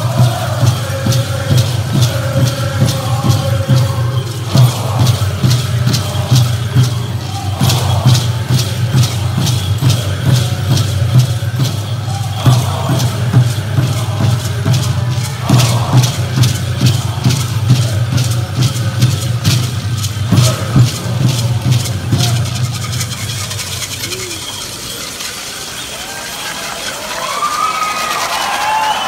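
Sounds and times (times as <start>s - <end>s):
men singing in chorus: 0.0s - 23.2s
steady drumbeat: 0.0s - 25.3s
dancers' rattles: 0.0s - 29.0s
crowd calls and whoops: 23.8s - 29.0s.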